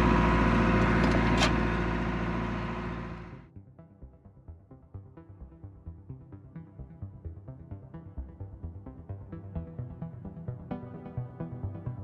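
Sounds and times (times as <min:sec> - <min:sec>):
boat engine running: 0:00.0 - 0:03.5.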